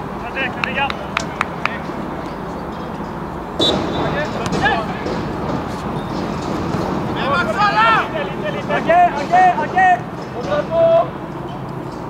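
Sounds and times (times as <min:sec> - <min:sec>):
outdoor background noise: 0:00.0 - 0:12.0
players shouting: 0:03.6 - 0:05.6, 0:06.6 - 0:11.3.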